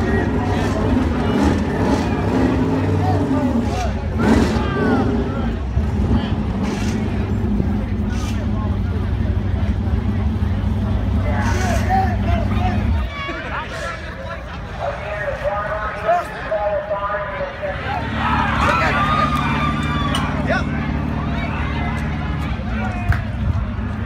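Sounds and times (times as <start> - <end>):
people's voices and shouting: 0.0 - 24.0
vehicle engine running: 0.0 - 24.0.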